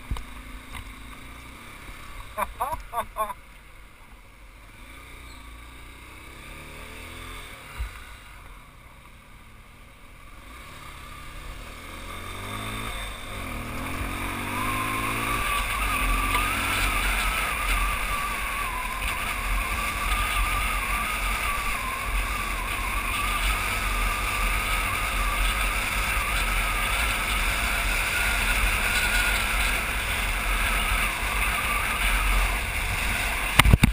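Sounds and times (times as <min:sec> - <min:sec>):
motorcycle accelerating: 0:00.0 - 0:03.4, 0:04.5 - 0:33.9
wind noise on microphone: 0:32.8 - 0:33.9.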